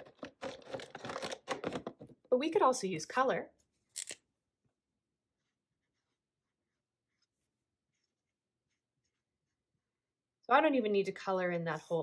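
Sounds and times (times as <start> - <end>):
marker scratching on paper: 5.3 - 9.8.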